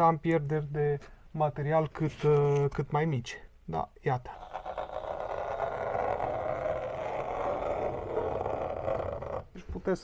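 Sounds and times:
pencil scratching on cardboard: 4.3 - 9.5.

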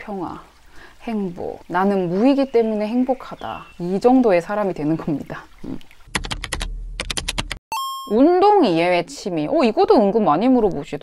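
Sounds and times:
short electronic beep: 7.7 - 8.2.

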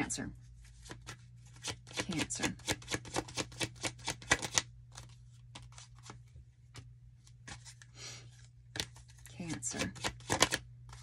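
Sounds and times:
cards being shuffled: 0.6 - 11.0.

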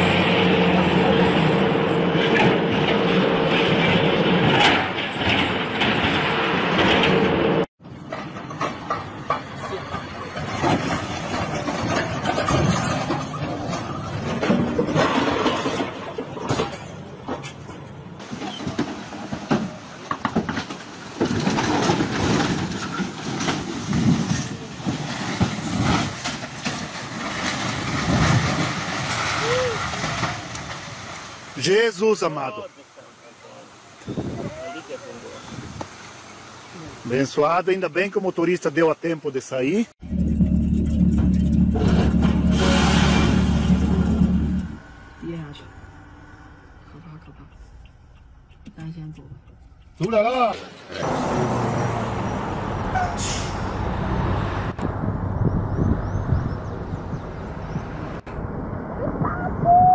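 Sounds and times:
outdoor noise: 0.0 - 59.9
voices: 31.6 - 35.7, 46.8 - 47.8, 48.6 - 51.0
heavy machine engine running: 40.0 - 45.1.

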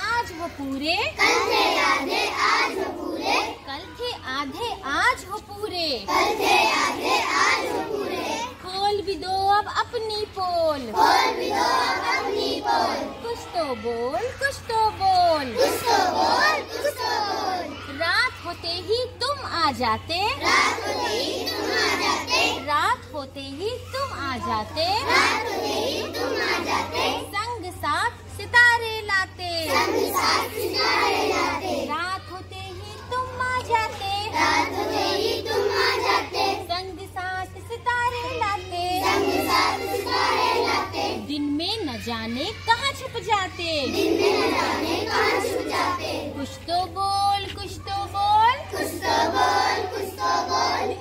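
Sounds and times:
children chanting in chorus: 1.2 - 3.6, 6.1 - 8.6, 10.9 - 13.2, 15.5 - 17.8, 20.4 - 22.6, 25.0 - 27.3, 29.6 - 31.9, 34.3 - 36.6, 39.0 - 41.2, 43.9 - 46.4, 48.7 - 51.0.

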